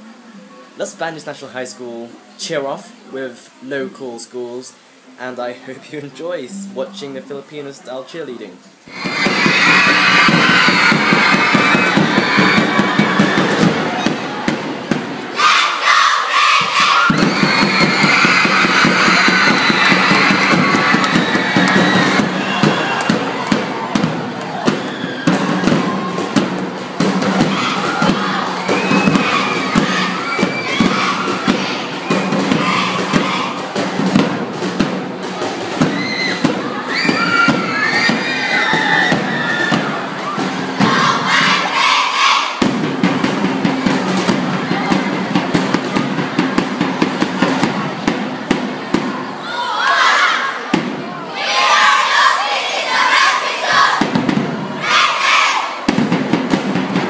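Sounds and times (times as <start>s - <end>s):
children cheering and shouting: 8.9s - 34.3s, 35.2s - 56.0s.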